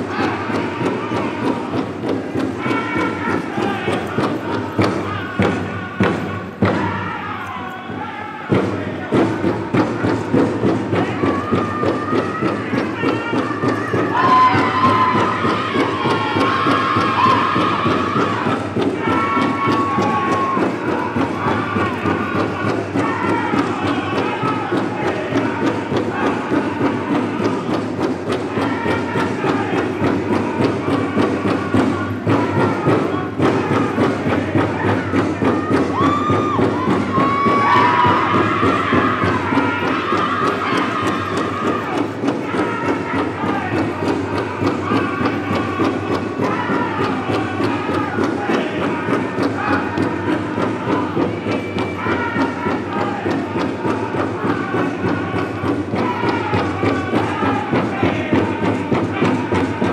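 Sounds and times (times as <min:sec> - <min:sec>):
big drum fast beat: 0:00.0 - 0:59.9
singers singing high-pitched lines: 0:00.0 - 0:59.9.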